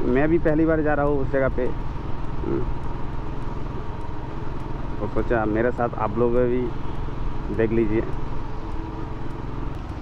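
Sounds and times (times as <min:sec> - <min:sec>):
motorcycle engine running: 0:00.0 - 0:10.0
road noise: 0:00.0 - 0:10.0.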